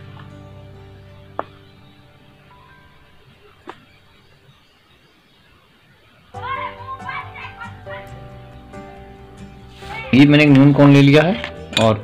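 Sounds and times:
music: 0.0 - 3.8, 6.4 - 12.0
children's voices: 6.4 - 8.2.

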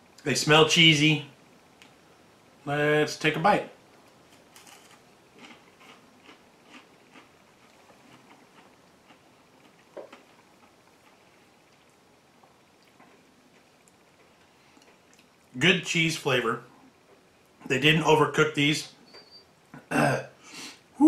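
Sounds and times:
crunching and chewing: 4.2 - 15.5.

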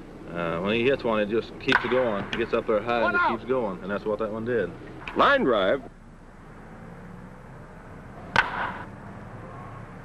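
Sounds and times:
film soundtrack hum and hiss: 0.0 - 10.0
baseball bat cracking ball: 1.7 - 2.5, 8.2 - 9.0.

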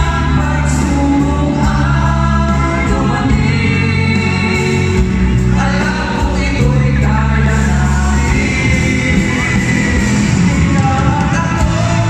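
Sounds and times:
singers singing together: 0.0 - 12.0.

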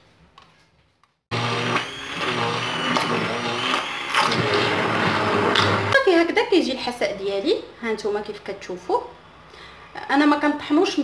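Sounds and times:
immersion blender whirring: 1.3 - 6.0.

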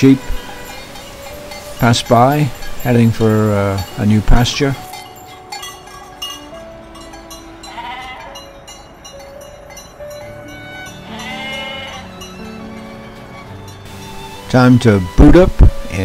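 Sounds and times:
background music: 0.0 - 16.0
sheep bleating: 7.6 - 8.4, 10.9 - 12.2.

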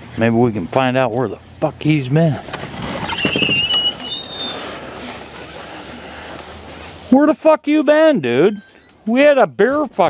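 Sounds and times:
steady background hiss: 0.0 - 10.0
door hinge squeaking: 2.8 - 4.6, 8.0 - 9.2.

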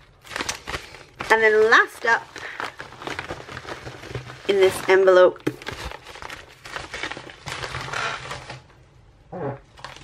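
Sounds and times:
packaging rustling and crinkling: 0.0 - 8.8, 9.6 - 10.0.

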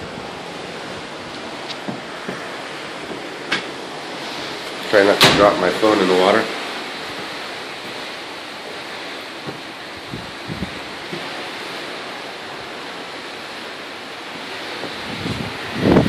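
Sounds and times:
wind rushing: 0.0 - 5.7, 9.9 - 11.0, 14.8 - 16.0
wind buffeting microphone: 0.0 - 13.2, 14.3 - 16.0
water washing along hull: 0.0 - 16.0.

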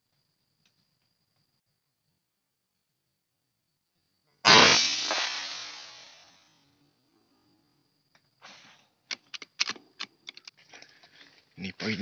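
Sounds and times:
air rifle shot: 4.4 - 6.4.

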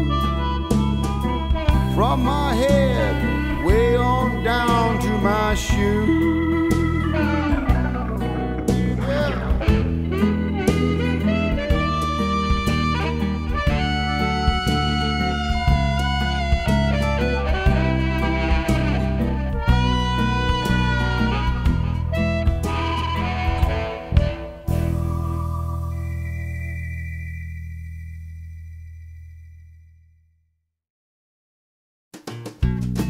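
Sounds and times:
electric guitar: 0.0 - 27.3
harmonica bending long notes: 0.0 - 28.5
bass guitar: 0.0 - 29.9, 32.2 - 33.0
steady drum beat: 1.6 - 13.9.

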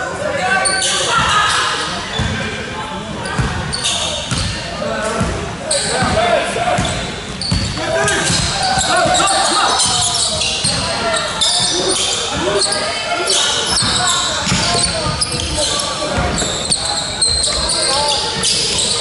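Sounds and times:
voices calling out: 3.3 - 19.0.

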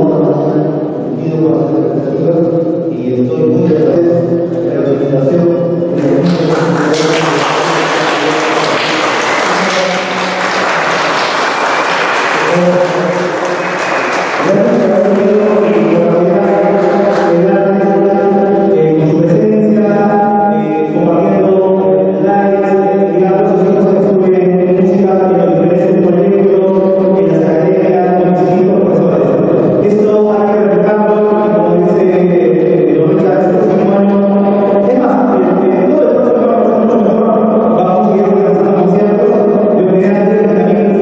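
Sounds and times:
applause: 6.0 - 17.4.

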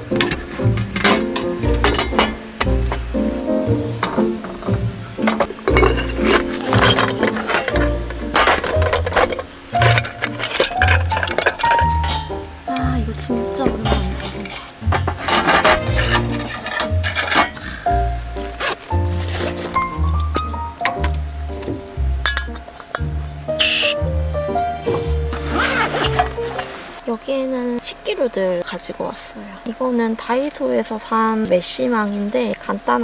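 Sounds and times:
insects trilling: 0.0 - 33.0
metal cookware clinks: 0.1 - 2.7, 5.2 - 12.6, 13.6 - 17.9, 22.2 - 23.8.

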